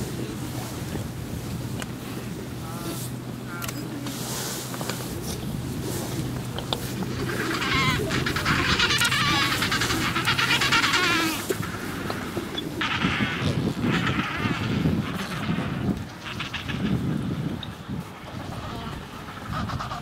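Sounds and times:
penguins braying: 0:00.0 - 0:17.6, 0:18.2 - 0:20.0.

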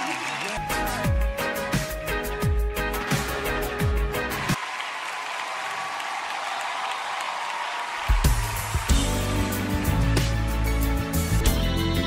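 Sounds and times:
audience applause: 0:00.0 - 0:01.4, 0:02.9 - 0:10.8.

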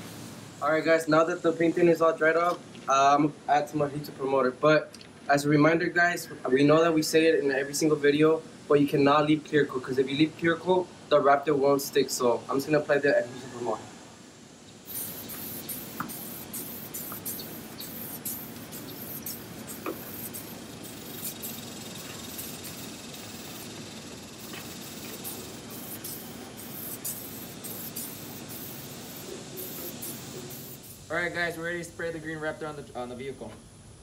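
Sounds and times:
aerosol can spraying: 0:14.8 - 0:31.1.

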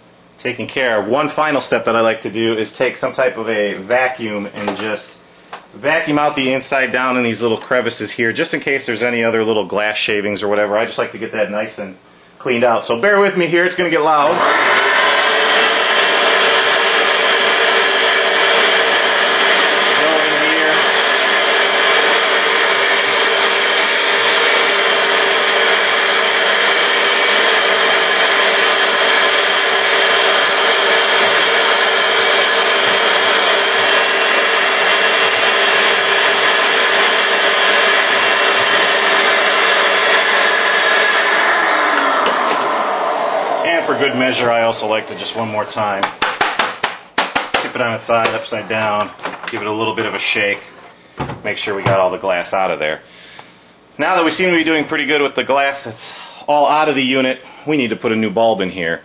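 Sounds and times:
vacuum cleaner running: 0:13.7 - 0:46.6, 0:54.0 - 0:55.7.

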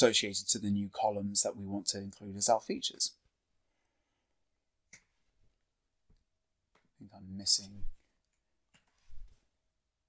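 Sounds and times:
person speaking: 0:06.9 - 0:08.2.

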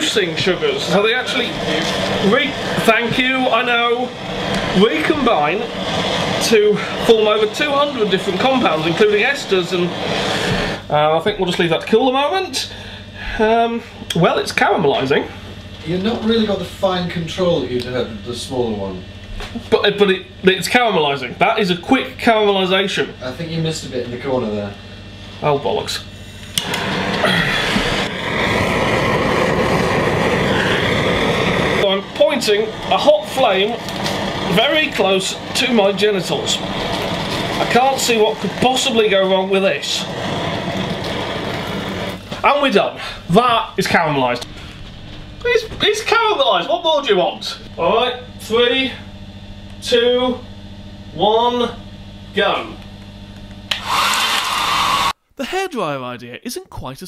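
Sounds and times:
blowtorch hissing: 0:00.0 - 0:17.0, 0:25.9 - 0:49.1, 0:53.7 - 0:55.2.

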